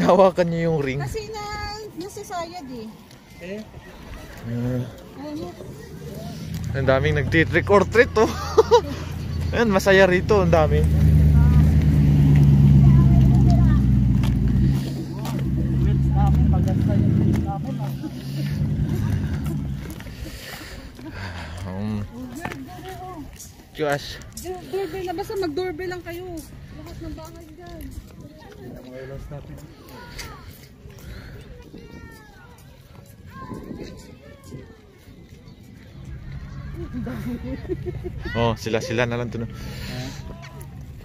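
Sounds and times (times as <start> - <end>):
faint voices: 1.0 - 8.2, 10.8 - 41.0
vehicle engine humming: 4.2 - 27.9
low rumble: 5.6 - 21.0.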